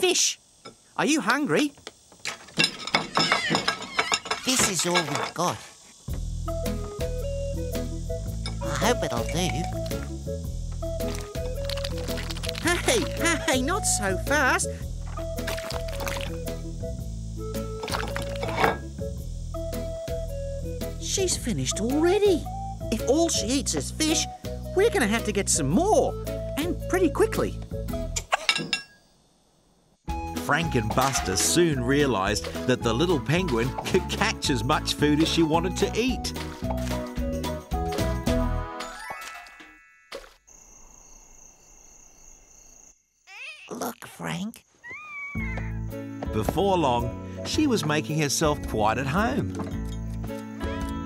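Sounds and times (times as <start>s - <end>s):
high chirring night ambience: 0.0s - 50.6s
light cartoon music: 6.2s - 28.4s, 30.1s - 40.3s, 45.3s - 51.0s
cartoon music phrase: 12.6s - 14.6s.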